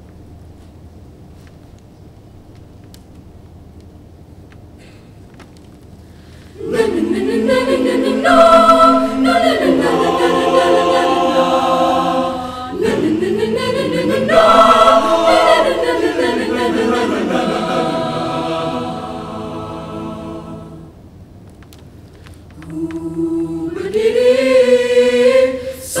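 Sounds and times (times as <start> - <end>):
choir singing a cappella: 6.6 - 21.0, 22.6 - 26.0.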